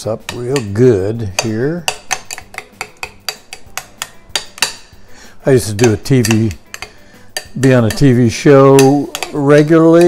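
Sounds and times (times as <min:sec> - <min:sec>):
spoon clinking in ceramic bowl: 0:00.3 - 0:05.0, 0:05.6 - 0:10.0.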